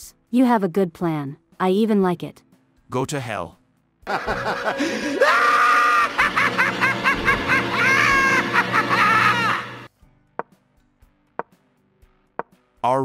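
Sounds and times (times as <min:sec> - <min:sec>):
cartoon character cackling laugh: 0:04.1 - 0:09.8.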